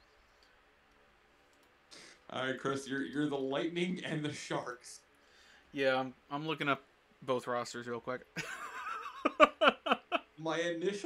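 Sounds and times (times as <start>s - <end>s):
faint clicks: 0.3s - 1.8s
computer mouse click: 0.4s - 1.8s.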